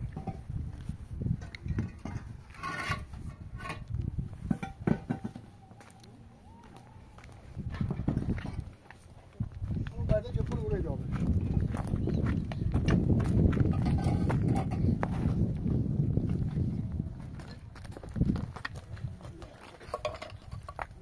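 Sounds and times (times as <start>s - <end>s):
concrete blocks clacking and scraping: 0.0s - 5.9s, 7.7s - 9.0s, 12.8s - 15.4s, 17.4s - 21.0s
footsteps on rubble: 0.0s - 21.0s.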